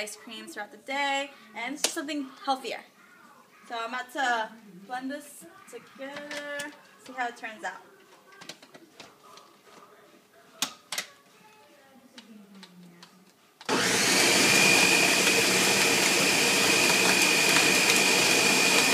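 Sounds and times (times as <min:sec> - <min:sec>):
blender motor whining: 0:13.7 - 0:18.9.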